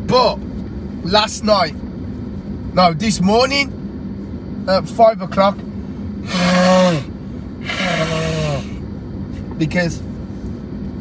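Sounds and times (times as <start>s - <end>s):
car and road noise: 0.0s - 11.0s.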